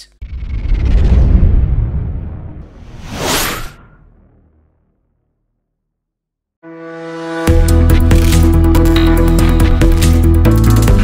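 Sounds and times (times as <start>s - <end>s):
whoosh: 0.2s - 5.6s
low boom: 0.2s - 5.8s.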